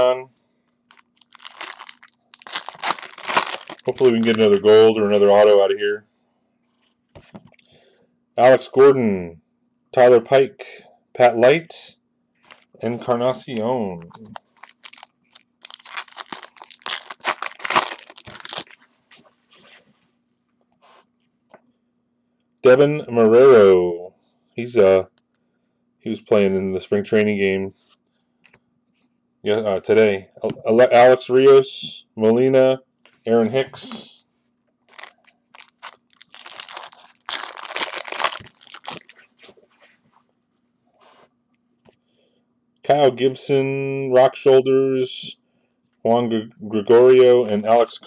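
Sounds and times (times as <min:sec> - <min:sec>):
foil wrapper tearing and crinkling: 0:00.9 - 0:04.6, 0:14.0 - 0:18.8, 0:34.9 - 0:39.2.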